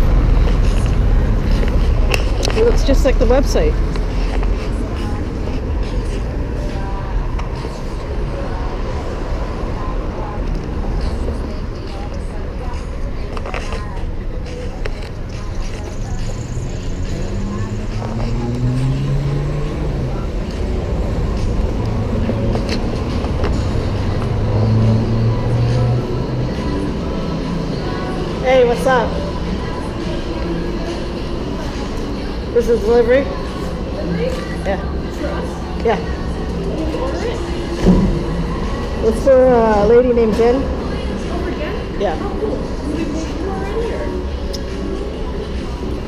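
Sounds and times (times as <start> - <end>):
low rumble of city street: 0.0 - 46.0
road noise: 0.0 - 46.0
vehicle engine humming: 0.0 - 46.0.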